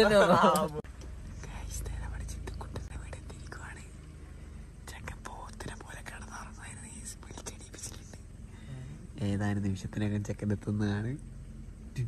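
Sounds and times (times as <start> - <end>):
low steady hum: 0.0 - 12.0
person whispering: 1.4 - 3.9, 4.9 - 8.2.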